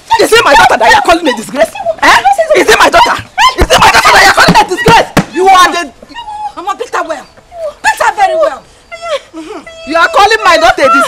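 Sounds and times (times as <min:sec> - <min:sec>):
women crying out in quarrel: 0:07.6 - 0:11.0.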